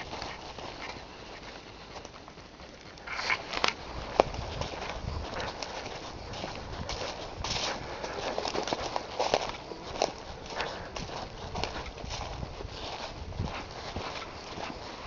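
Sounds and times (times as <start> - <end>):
footsteps through dry leaves: 3.0 - 15.0.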